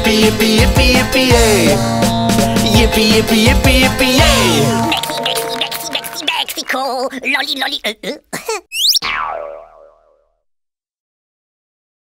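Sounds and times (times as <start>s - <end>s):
cartoon boing sound effect: 8.7s - 10.4s.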